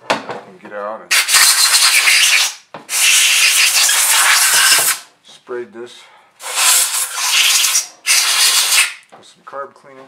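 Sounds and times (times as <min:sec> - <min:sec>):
compressed air blasts: 0:01.1 - 0:05.1, 0:06.4 - 0:09.0.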